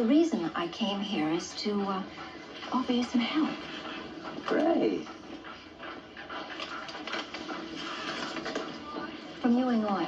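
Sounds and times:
paper rustling: 0:06.5 - 0:08.8.

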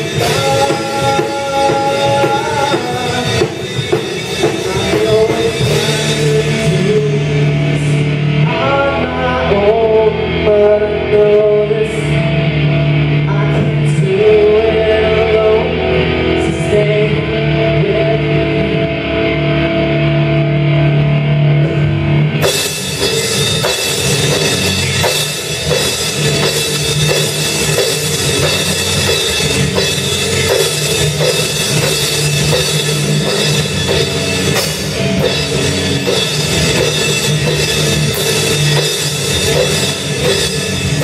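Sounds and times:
drum kit with cymbals: 0:00.0 - 0:08.7, 0:21.6 - 0:41.0
person singing into a microphone: 0:00.0 - 0:12.4, 0:13.2 - 0:19.2
live rock song: 0:00.0 - 0:41.0
sustained bass notes: 0:00.0 - 0:41.0.

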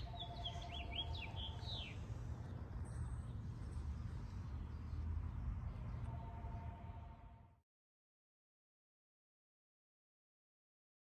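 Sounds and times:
songbirds chirping: 0:00.0 - 0:07.0.

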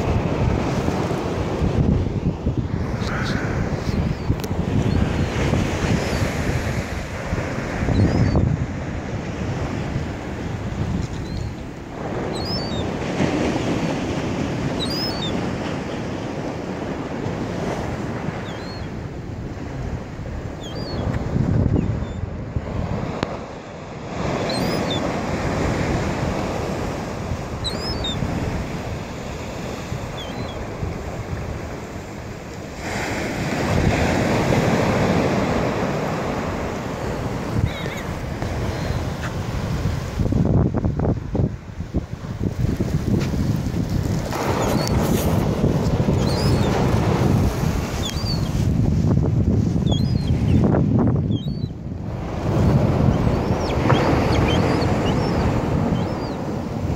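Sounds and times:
ocean surf breaking: 0:00.0 - 0:51.2, 0:51.8 - 0:56.9
wind buffeting microphone: 0:00.0 - 0:56.9.

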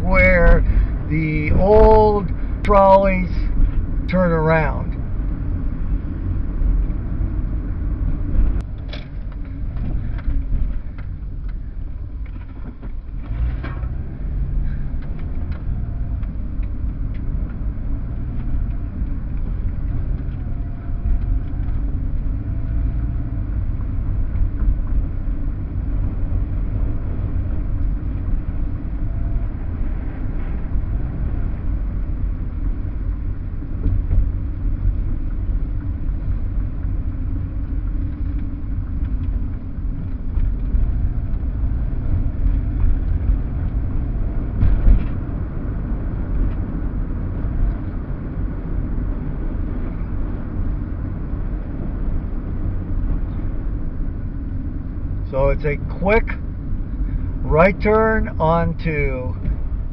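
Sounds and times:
engine and tyre rumble in car: 0:00.0 - 0:59.9.

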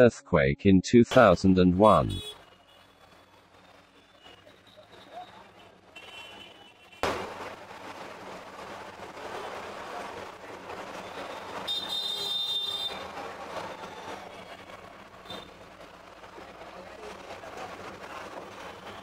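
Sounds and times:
busy street traffic: 0:00.0 - 0:19.0.

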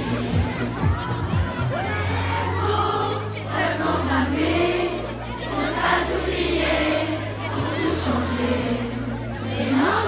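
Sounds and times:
backing music from loudspeakers: 0:00.0 - 0:10.0
children singing together: 0:02.2 - 0:10.0.

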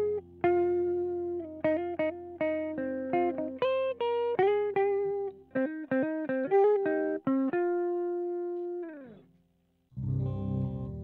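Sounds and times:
distorted electric guitar: 0:10.0 - 0:11.0.

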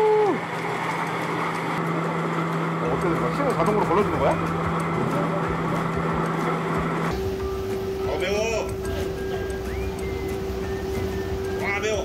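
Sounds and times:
seed separator humming: 0:00.0 - 0:12.0
grinder running: 0:00.4 - 0:07.3.

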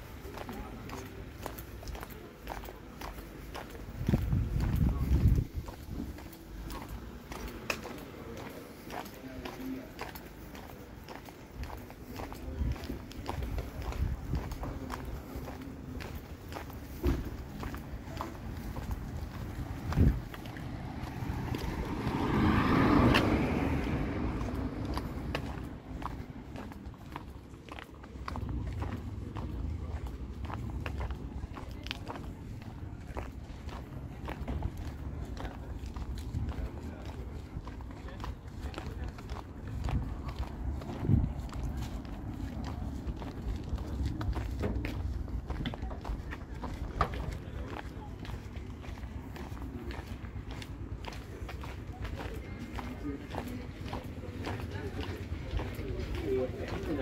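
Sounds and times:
faint voices of people: 0:00.0 - 0:57.0
footsteps on pavement: 0:00.0 - 0:57.0
steady low rumble: 0:02.2 - 0:08.4, 0:12.4 - 0:56.7.

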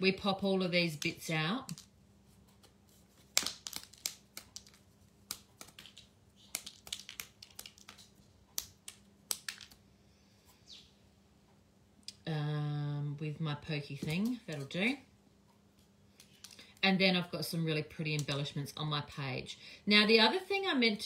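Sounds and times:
chipboard pieces clicking and snapping: 0:01.0 - 0:01.9, 0:03.2 - 0:09.8.

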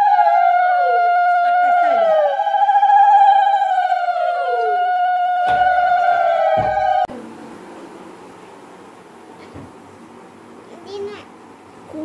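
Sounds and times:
knocks: 0:05.4 - 0:07.1.

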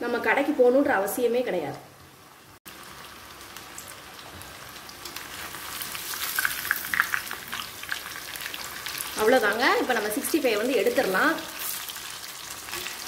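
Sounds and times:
chicken deep-frying in oil: 0:02.7 - 0:13.0.

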